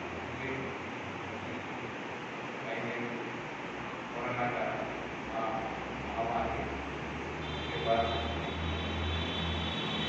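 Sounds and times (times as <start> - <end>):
man talking into a microphone: 7.7 - 8.4.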